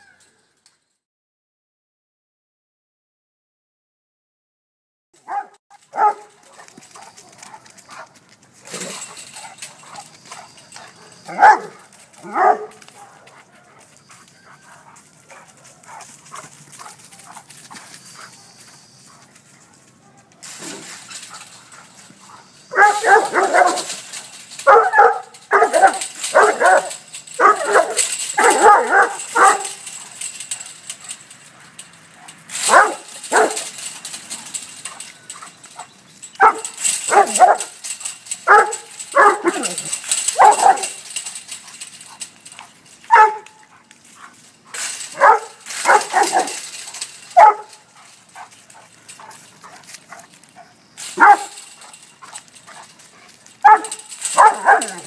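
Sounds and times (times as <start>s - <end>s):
dog barking: 5.2s - 7.6s, 10.9s - 13.8s, 22.7s - 24.0s, 24.6s - 29.8s, 32.7s - 33.7s, 36.4s - 37.7s, 38.4s - 41.0s, 43.1s - 43.6s, 45.1s - 46.6s, 47.4s - 47.8s, 51.2s - 51.6s, 53.6s - 55.0s.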